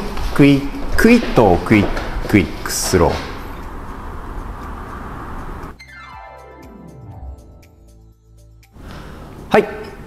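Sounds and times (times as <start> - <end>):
dance studio room noise: 0.0 - 5.8
outro music jingle: 5.7 - 8.8.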